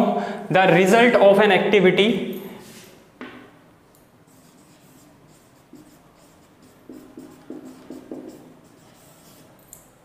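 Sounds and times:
marker scratching on whiteboard: 4.2s - 9.6s.

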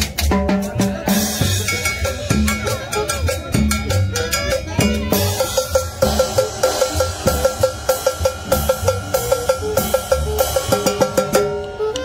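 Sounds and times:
pulsing bass: 0.0s - 12.0s
drum sticks striking: 1.3s - 12.0s.

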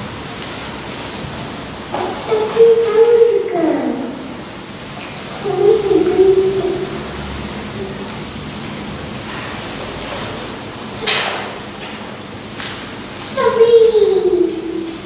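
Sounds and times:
steady hiss: 0.0s - 15.0s.

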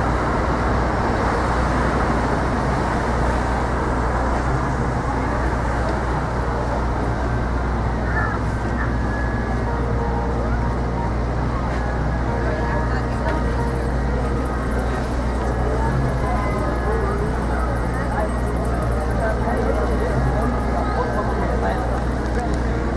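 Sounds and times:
car traffic rumble: 0.0s - 22.9s
indistinct voices: 0.0s - 22.9s.

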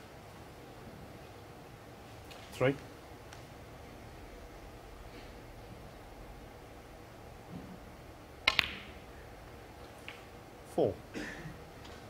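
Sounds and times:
snooker balls clicking: 8.4s - 10.4s.

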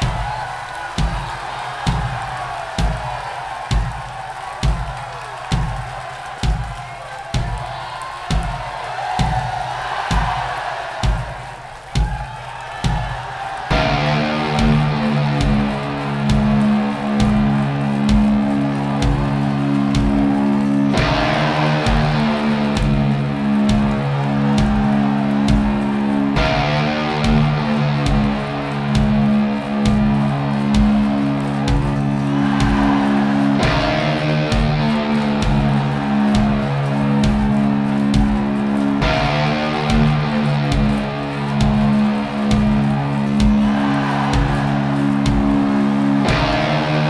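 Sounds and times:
concert crowd cheering: 0.0s - 47.0s
bass drum beating slowly: 13.7s - 46.8s
electric guitar: 13.7s - 47.0s.

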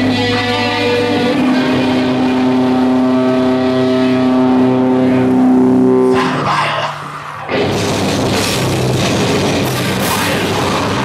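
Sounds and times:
distorted electric guitars: 0.0s - 11.0s.

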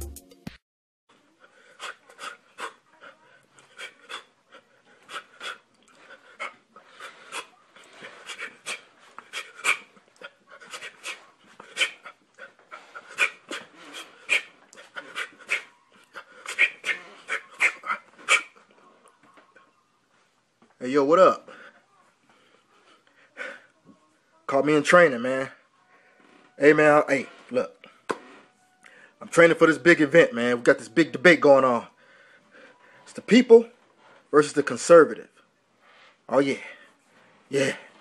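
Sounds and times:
man breathing hard: 3.6s - 18.5s, 31.9s - 33.1s.

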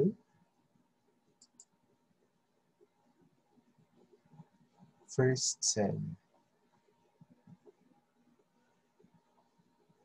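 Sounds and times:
computer mouse clicks: 1.3s - 1.8s.

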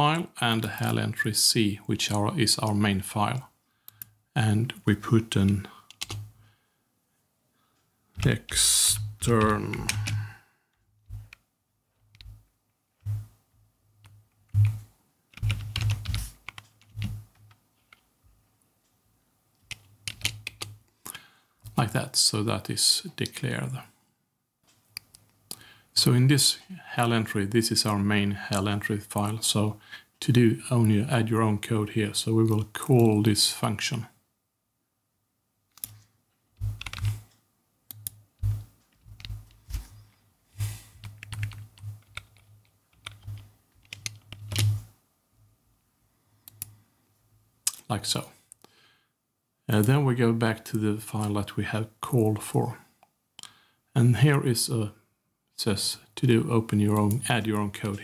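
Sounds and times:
computer keyboard typing: 5.5s - 6.3s, 8.2s - 10.3s, 12.1s - 13.3s, 14.0s - 18.0s, 19.6s - 20.8s, 35.7s - 36.0s, 36.6s - 37.3s, 37.9s - 40.0s, 41.0s - 44.8s
keyboard key clicks: 43.0s - 44.8s.

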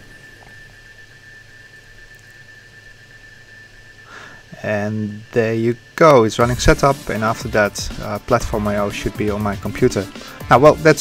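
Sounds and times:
steady low hum: 0.0s - 11.0s
thin high-pitched whine: 0.0s - 11.0s.

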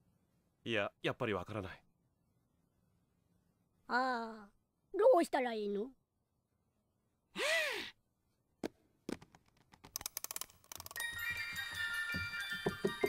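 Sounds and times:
music box tinkling tune: 11.0s - 13.0s.

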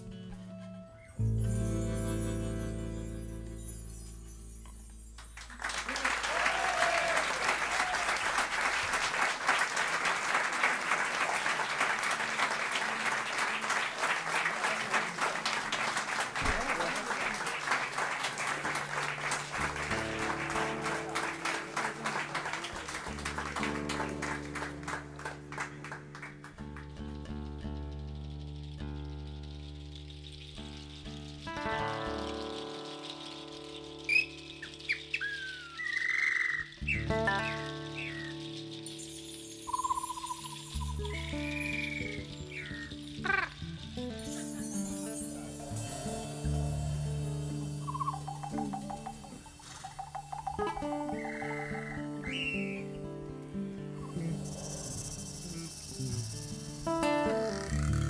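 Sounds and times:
audience applauding: 5.2s - 27.2s, 32.0s - 52.9s, 54.0s - 58.0s
rising whistle-like calls: 32.2s - 43.8s, 45.1s - 53.0s, 54.0s - 58.0s
band playing sustained low tones: 43.6s - 51.0s.

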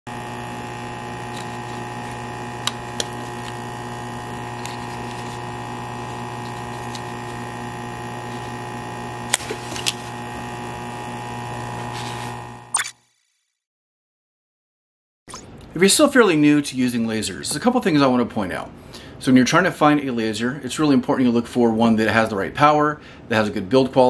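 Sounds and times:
steady electrical hum: 0.1s - 12.7s.

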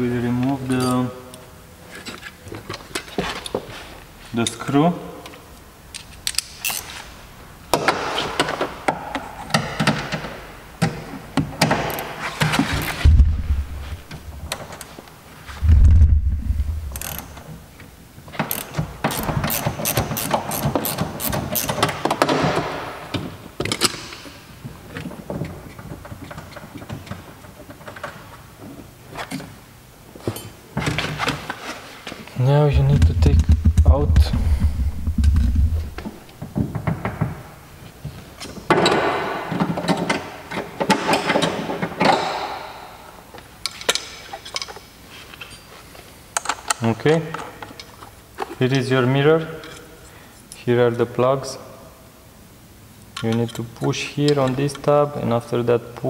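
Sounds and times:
heavy low thumps: 13.0s - 14.5s, 15.6s - 17.4s, 32.7s - 36.6s.

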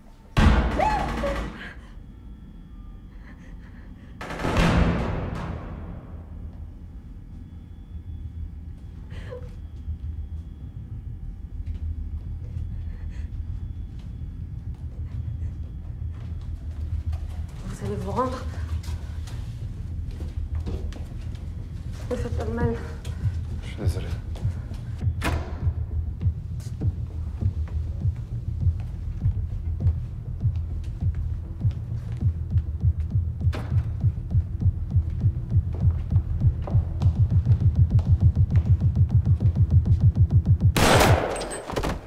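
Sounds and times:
steady hum: 0.0s - 41.6s
low throbbing pulse: 0.4s - 41.3s
low rumble: 2.0s - 41.3s.

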